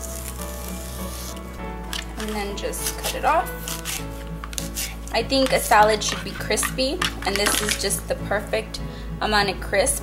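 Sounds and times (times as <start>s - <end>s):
knife slicing lettuce: 0.0s - 7.8s
background music: 0.0s - 10.0s.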